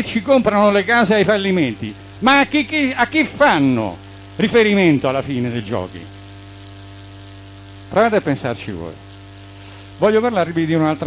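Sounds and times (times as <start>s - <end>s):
steady hum of constant pitches: 0.0s - 11.0s.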